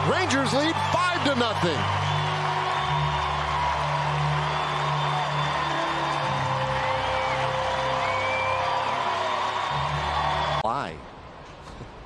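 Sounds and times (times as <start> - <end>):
crowd noise: 0.0 - 10.6
music over stadium speakers: 0.0 - 10.6.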